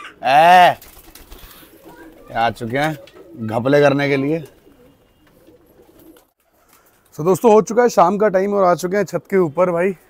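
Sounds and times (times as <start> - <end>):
pigeons cooing faintly: 0.0 - 7.6.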